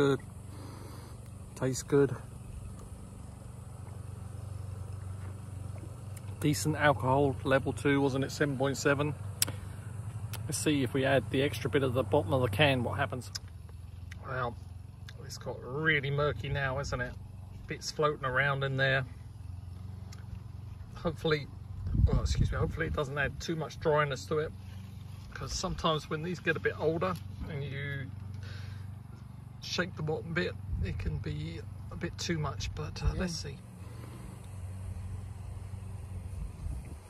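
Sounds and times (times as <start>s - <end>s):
low motor hum with rapid pulse: 0.0s - 37.0s.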